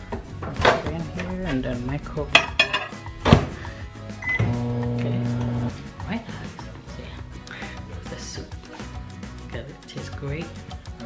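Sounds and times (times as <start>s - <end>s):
keypad beep: 4.2s - 4.5s.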